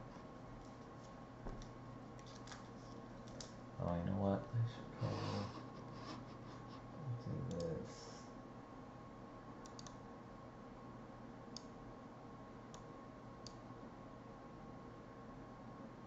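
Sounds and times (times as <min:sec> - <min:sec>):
faint electrical hum: 0:00.0 - 0:16.0
computer mouse clicks: 0:03.2 - 0:03.6, 0:07.5 - 0:07.8, 0:09.6 - 0:10.0, 0:11.5 - 0:11.8, 0:12.7 - 0:13.6.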